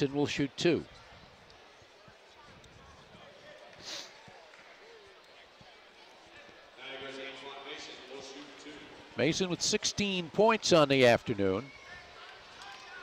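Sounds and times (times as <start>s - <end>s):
crowd murmur: 0.8s - 10.5s
brief hiss: 3.8s - 4.2s.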